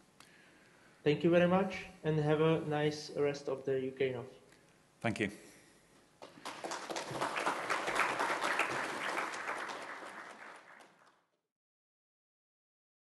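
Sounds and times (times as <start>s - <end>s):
audience applauding: 6.2s - 11.3s.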